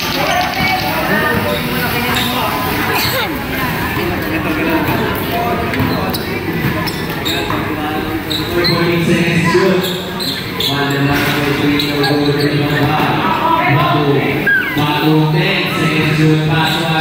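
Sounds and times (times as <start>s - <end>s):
people shouting and talking: 0.0s - 17.0s
basketball bouncing: 5.7s - 7.7s.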